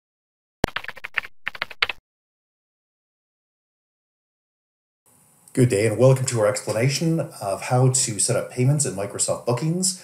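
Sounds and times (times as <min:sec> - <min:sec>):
computer keyboard typing: 0:00.6 - 0:02.0.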